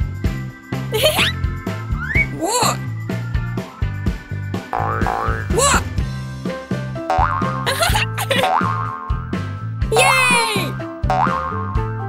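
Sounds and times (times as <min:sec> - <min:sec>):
bouncy cartoon music: 0:00.9 - 0:12.0
springy boing sound effects: 0:04.8 - 0:05.6, 0:11.1 - 0:11.6.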